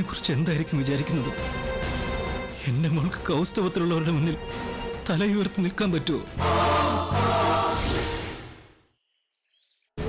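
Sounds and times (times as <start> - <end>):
choir singing sustained chords: 6.4 - 8.6.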